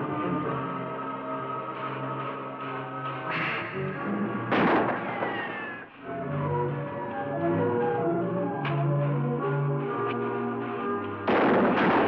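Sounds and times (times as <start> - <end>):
dramatic orchestral film score: 0.0 - 12.0
light crack: 4.5 - 5.8
loud gunshot: 4.5 - 5.8, 11.3 - 12.0.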